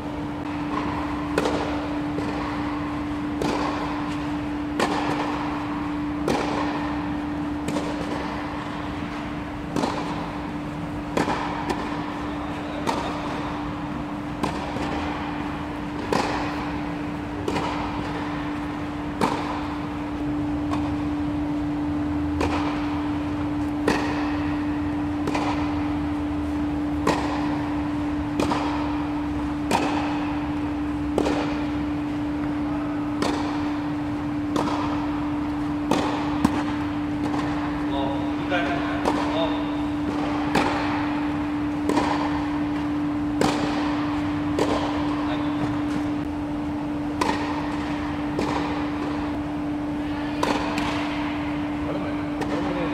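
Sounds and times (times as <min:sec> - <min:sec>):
steady hum: 0:00.0 - 0:52.9
tennis balls struck with racquets: 0:00.0 - 0:52.9.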